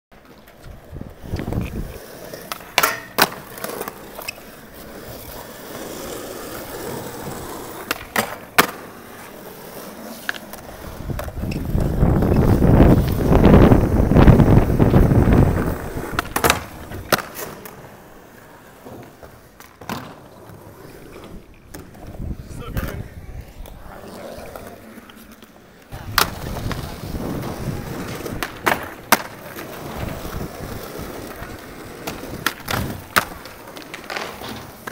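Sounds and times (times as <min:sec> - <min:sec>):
skateboard clacking on ground: 0:00.1 - 0:34.9
skateboard wheels rolling on concrete: 0:00.1 - 0:34.9.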